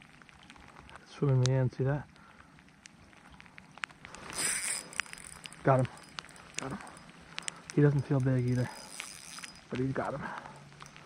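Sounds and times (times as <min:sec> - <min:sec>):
light ticks of rain: 0:00.0 - 0:11.0.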